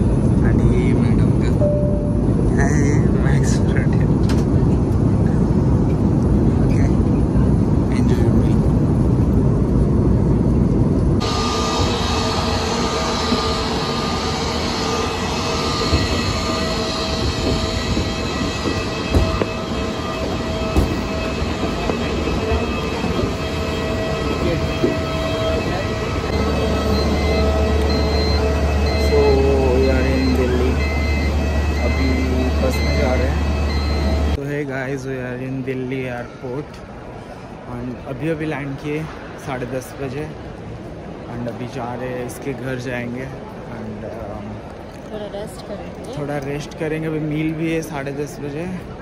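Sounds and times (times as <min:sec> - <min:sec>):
airliner cabin rumble: 0:00.0 - 0:34.4
shuttle bus hum: 0:00.0 - 0:34.4
jet airliner whine: 0:00.0 - 0:49.0.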